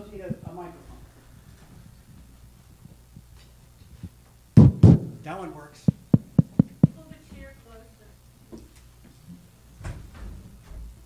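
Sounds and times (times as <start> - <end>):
microphone handling thumps: 1.5 - 7.5
microphone handling knock: 4.6 - 5.2, 5.9 - 7.4.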